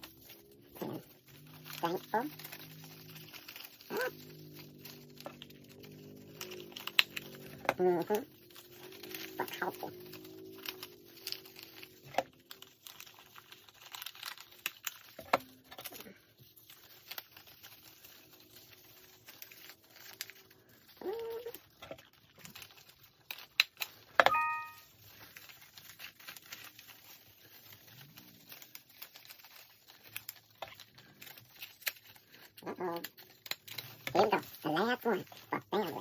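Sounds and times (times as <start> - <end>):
paper rustling and crinkling: 0.0 - 36.0.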